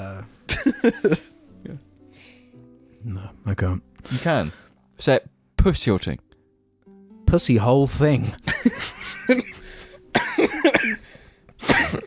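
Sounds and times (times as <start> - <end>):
man coughing: 0.5 - 1.3, 8.5 - 12.0
people laughing: 8.4 - 9.7.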